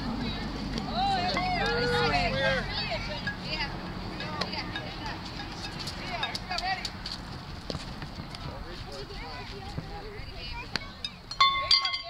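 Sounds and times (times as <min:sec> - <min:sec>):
people chattering: 0:00.0 - 0:07.0, 0:08.2 - 0:12.0.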